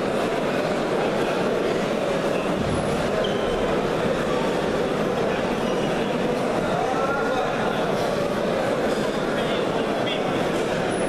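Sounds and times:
crowd murmur: 0.0s - 11.0s.

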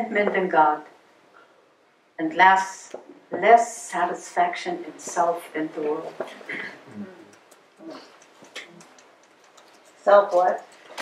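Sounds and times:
person humming in agreement: 6.8s - 8.0s.

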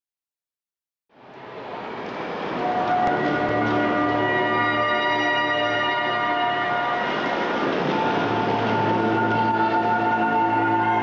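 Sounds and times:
music with sustained held chords: 2.2s - 11.0s.

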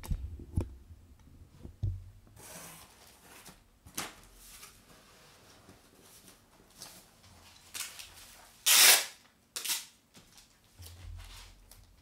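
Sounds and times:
packing tape tearing: 7.7s - 10.0s.

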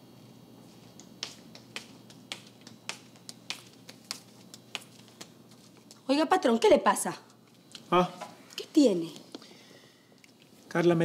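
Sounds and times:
footsteps on hard floor: 0.7s - 6.0s.

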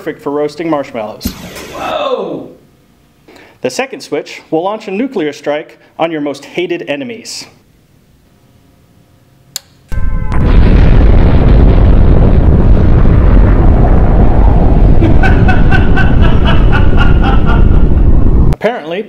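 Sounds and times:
toggle switch click: 9.5s - 9.8s
deep rumbling explosion: 9.9s - 18.6s.

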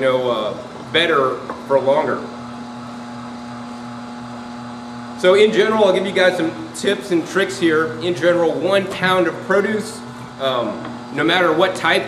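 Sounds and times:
juicer motor humming: 0.0s - 12.0s.

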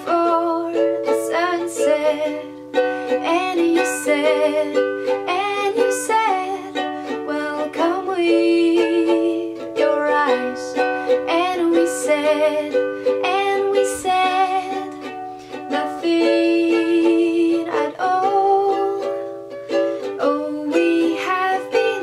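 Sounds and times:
woman singing: 0.0s - 19.4s, 20.0s - 22.0s
strummed ukulele chords: 0.0s - 22.0s.

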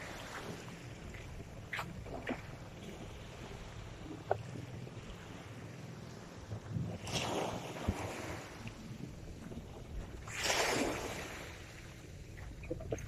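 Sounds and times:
small waves washing onto sand: 0.0s - 13.0s
wind rumble on microphone: 0.0s - 13.0s.

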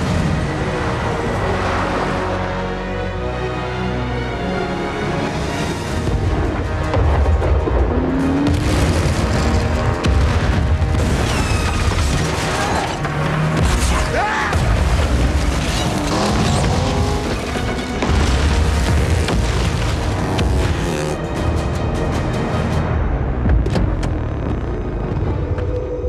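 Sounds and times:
dramatic score music: 0.0s - 26.0s
landmines exploding: 8.3s - 20.9s.

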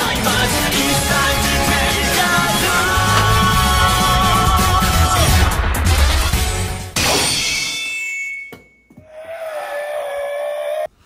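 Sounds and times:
dramatic music: 0.0s - 7.2s.

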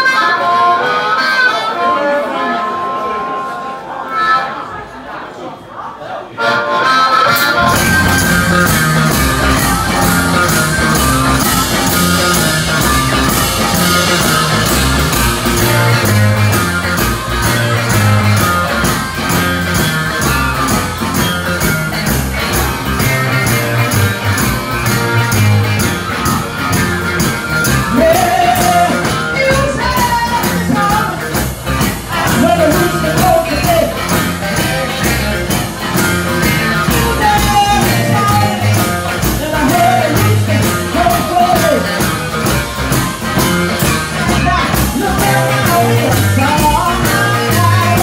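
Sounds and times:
blues band playing: 0.0s - 5.0s, 6.3s - 48.0s.

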